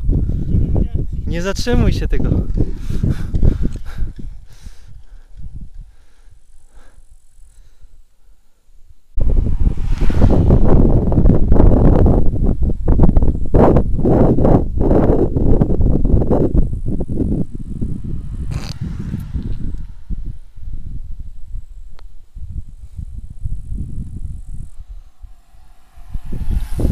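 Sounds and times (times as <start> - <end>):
wind buffeting microphone: 0.0 - 7.8, 9.2 - 26.9.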